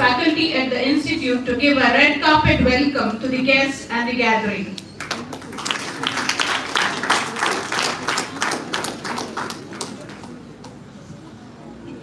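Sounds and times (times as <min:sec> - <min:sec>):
audience applauding: 0:05.0 - 0:10.8.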